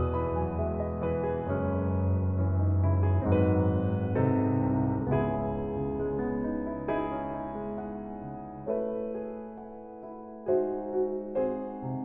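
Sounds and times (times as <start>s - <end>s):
soft slow piano music: 0.0s - 12.0s.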